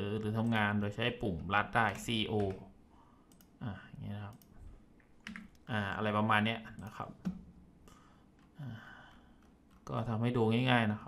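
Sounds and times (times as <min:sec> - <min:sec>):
keyboard keystrokes: 0:01.9 - 0:02.6, 0:05.2 - 0:05.7
mouse clicks: 0:03.3 - 0:03.6, 0:04.3 - 0:05.7.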